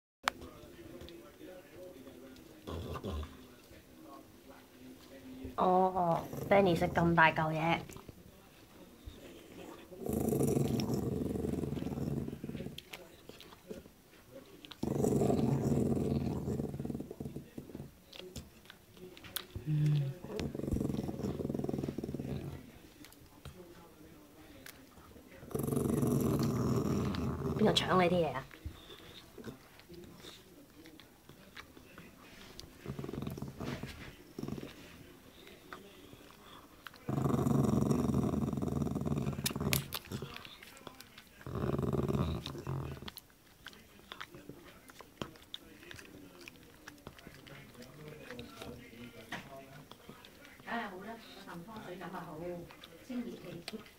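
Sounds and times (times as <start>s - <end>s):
dog growling: 2.6s - 3.5s, 5.6s - 8.0s, 9.1s - 13.9s, 14.6s - 18.3s, 19.5s - 22.9s, 25.3s - 30.4s, 32.6s - 44.5s.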